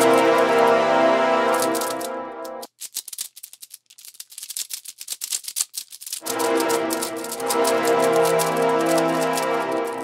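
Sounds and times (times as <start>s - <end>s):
rapid dry clicks: 0.0s - 0.8s, 1.5s - 10.0s.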